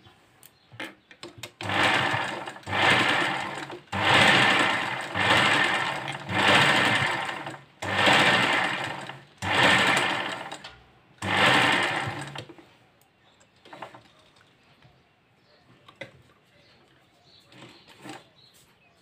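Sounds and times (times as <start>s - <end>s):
sewing machine stitching: 1.4s - 12.6s.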